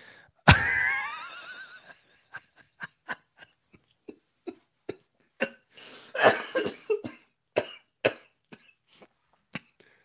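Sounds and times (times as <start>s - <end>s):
man laughing: 0.5s - 5.5s
man coughing: 4.9s - 8.8s.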